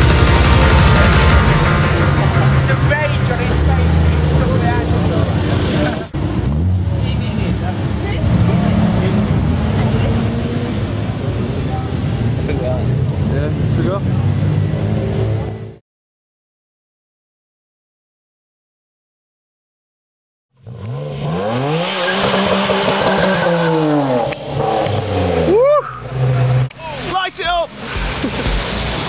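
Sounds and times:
people talking: 0.0s - 6.2s, 6.9s - 10.6s, 11.2s - 14.2s, 26.7s - 28.6s
car engines running: 0.0s - 15.8s, 20.6s - 29.0s.

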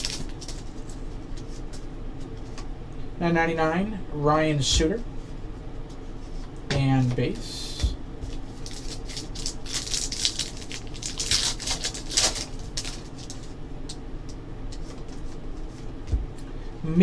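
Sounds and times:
foil wrapper tearing and crinkling: 0.0s - 0.7s, 8.5s - 13.5s.

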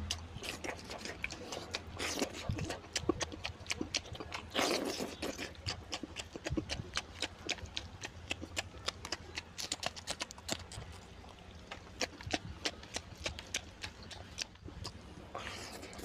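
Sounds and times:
chewing and lip-smacking: 0.0s - 16.0s.

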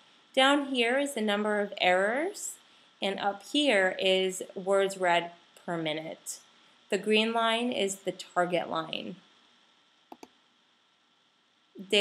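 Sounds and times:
computer mouse clicks: 10.1s - 10.4s.

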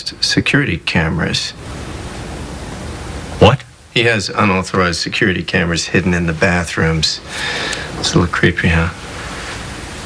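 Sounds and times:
steady background hiss: 0.0s - 10.0s
person speaking: 3.4s - 9.1s.

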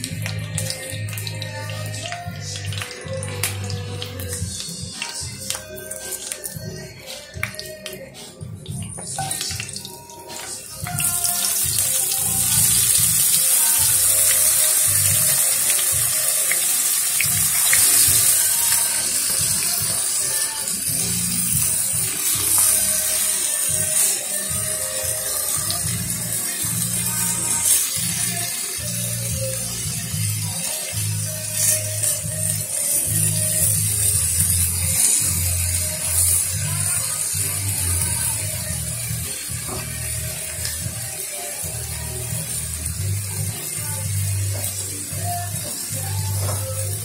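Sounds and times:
background music: 0.0s - 47.0s
meat sizzling in hot oil: 8.7s - 47.0s.

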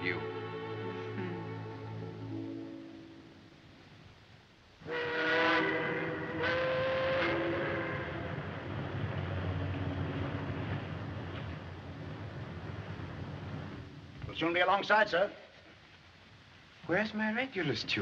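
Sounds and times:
steady background noise: 0.0s - 18.0s
ship's steam whistle blasts: 4.8s - 8.4s.

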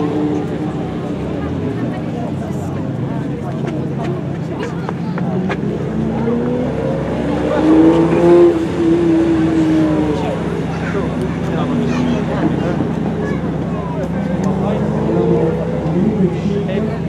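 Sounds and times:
sports car engine passing: 0.0s - 17.0s.

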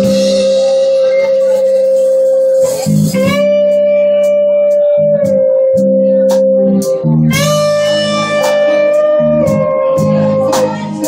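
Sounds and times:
bass guitar: 0.0s - 11.0s
electric guitar sustained lead note: 0.0s - 11.0s
keyboard: 0.0s - 11.0s.

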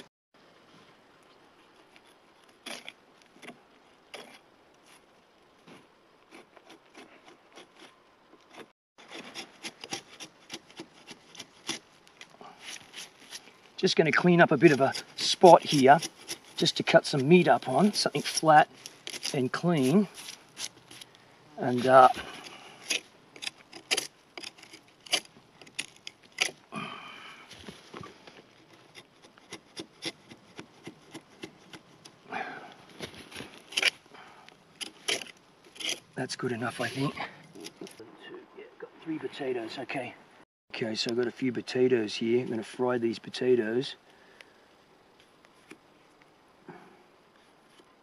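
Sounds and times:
knife scraping bark off log: 1.9s - 5.1s, 5.8s - 13.7s, 14.4s - 26.7s, 28.5s - 32.2s, 32.8s - 34.0s, 34.8s - 37.9s.

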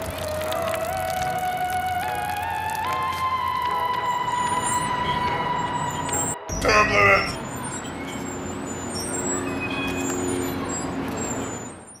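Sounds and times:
engine humming: 0.0s - 11.9s
traffic noise: 0.0s - 12.0s.

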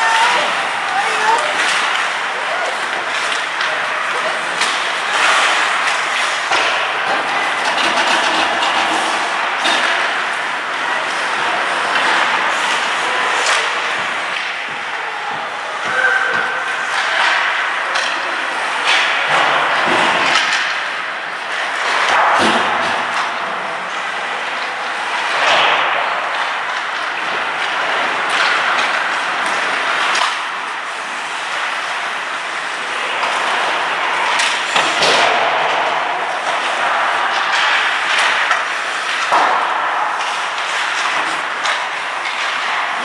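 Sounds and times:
skate blades scraping ice: 0.0s - 7.6s, 23.9s - 43.0s
sticks knocking puck: 0.0s - 18.2s.

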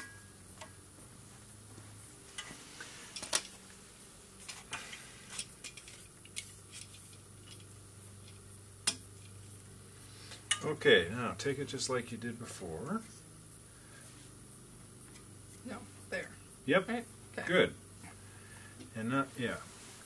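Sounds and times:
handling of small parts: 4.4s - 8.4s
light clicks and metallic clinks: 5.3s - 9.5s, 10.3s - 10.8s.

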